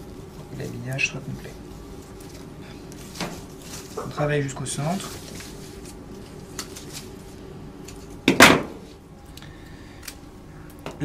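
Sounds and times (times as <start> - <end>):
hands handling flower stems: 0.0 - 10.9.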